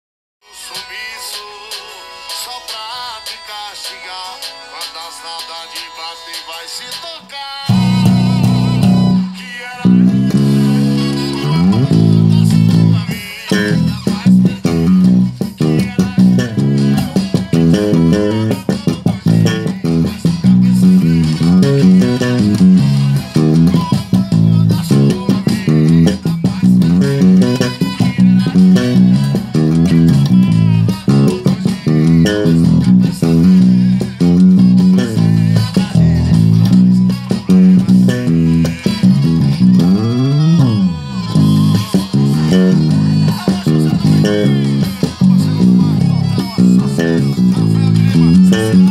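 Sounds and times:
electric bass groove: 7.7s - 48.9s.

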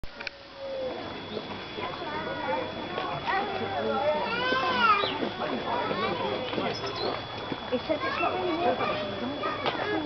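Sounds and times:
overlapping chatter: 0.1s - 10.0s.

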